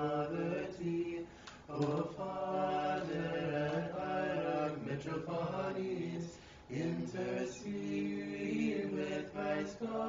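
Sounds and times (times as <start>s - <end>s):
men singing liturgical chant: 0.0s - 10.0s.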